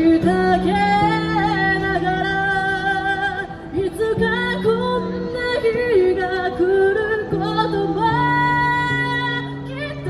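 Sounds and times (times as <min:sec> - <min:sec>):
woman singing into microphone: 0:00.0 - 0:10.0.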